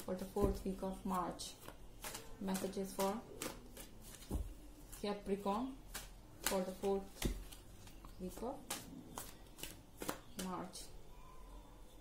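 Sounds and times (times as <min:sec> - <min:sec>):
cards being shuffled: 0:01.5 - 0:05.1, 0:05.9 - 0:10.6
card slaps: 0:08.7 - 0:10.6.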